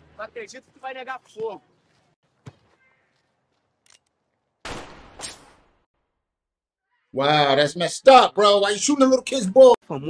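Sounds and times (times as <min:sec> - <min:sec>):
gunshot: 0:04.6 - 0:05.9
sharp crack: 0:04.6 - 0:05.9.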